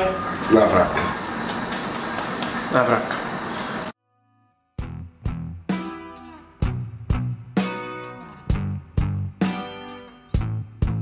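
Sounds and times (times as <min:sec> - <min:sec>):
kitchen background noise: 0:00.0 - 0:03.9
strummed guitar chords: 0:04.8 - 0:11.0.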